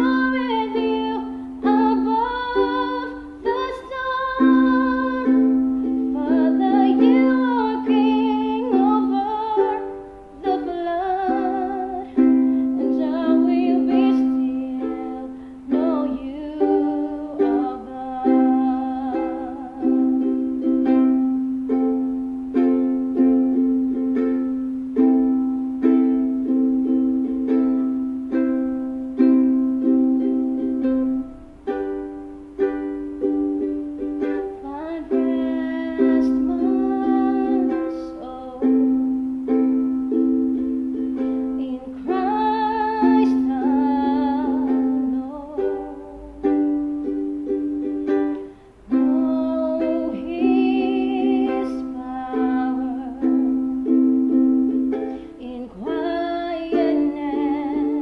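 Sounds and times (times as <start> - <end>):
woman singing: 0.0 - 21.3, 34.2 - 58.0
ukulele strumming: 0.0 - 58.0.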